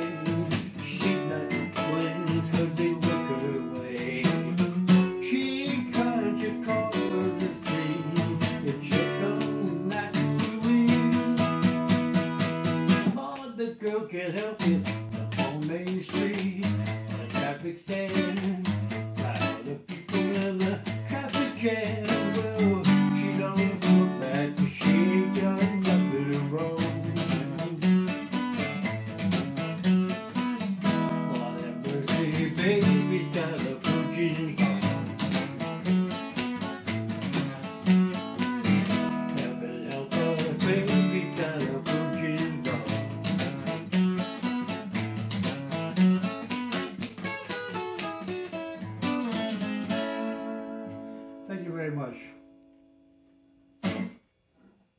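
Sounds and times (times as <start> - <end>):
acoustic guitar picked and strummed: 0.0 - 54.9.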